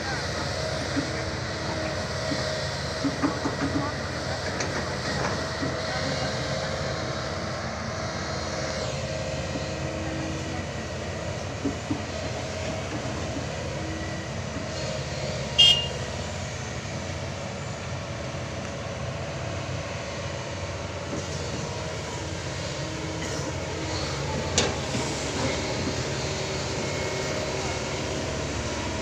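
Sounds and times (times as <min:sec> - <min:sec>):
excavator diesel engine running: 0:00.0 - 0:29.0.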